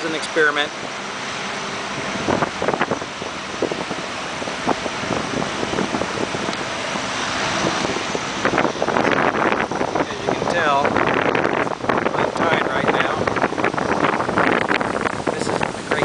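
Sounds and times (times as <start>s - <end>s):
surf washing on beach: 0.0s - 16.0s
wind gusts on microphone: 0.0s - 16.0s.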